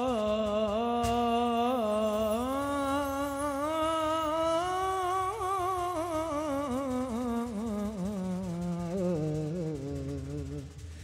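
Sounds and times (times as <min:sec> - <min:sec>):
man singing into a microphone: 0:00.0 - 0:10.7.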